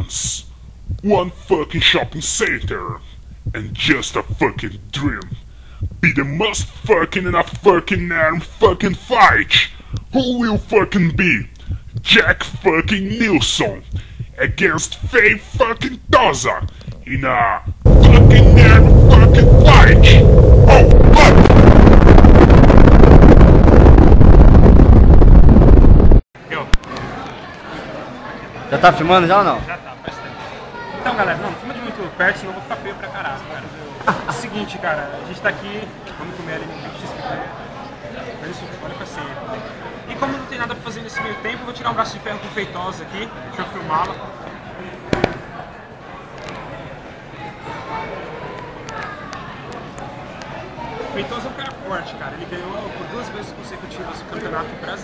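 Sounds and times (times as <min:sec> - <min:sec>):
distorted explosion rumble: 0:17.7 - 0:26.2
background chatter: 0:26.4 - 0:55.0.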